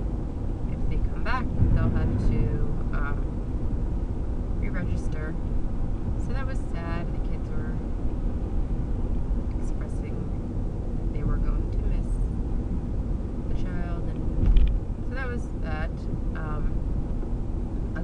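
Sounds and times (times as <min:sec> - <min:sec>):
road and engine rumble in car: 0:00.0 - 0:18.0
person talking: 0:00.7 - 0:03.2, 0:04.6 - 0:05.4, 0:06.2 - 0:07.8, 0:09.6 - 0:10.3, 0:11.2 - 0:12.2, 0:15.1 - 0:16.7
low thump: 0:01.5 - 0:04.0.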